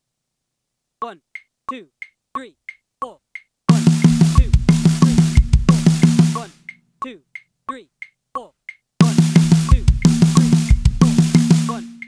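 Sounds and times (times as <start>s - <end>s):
voice speaking the count: 1.0s - 3.2s, 4.4s - 4.6s, 6.4s - 8.6s
bass drum hits: 3.7s - 6.2s
snare drum strokes: 3.7s - 6.8s, 9.0s - 12.0s.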